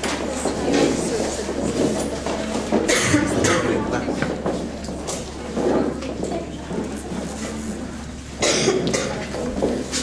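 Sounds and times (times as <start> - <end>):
person coughing: 2.9 - 3.8, 8.4 - 9.2.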